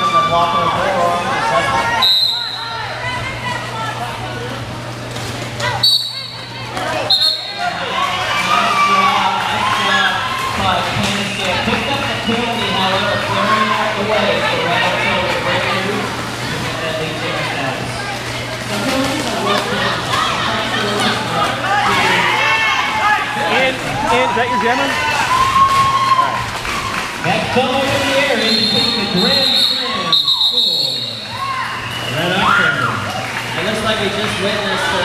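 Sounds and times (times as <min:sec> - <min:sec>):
indistinct voices and chatter: 0:00.0 - 0:35.0
referee's whistle blasts: 0:02.0 - 0:02.7, 0:05.8 - 0:06.4, 0:07.0 - 0:07.6, 0:28.4 - 0:31.4.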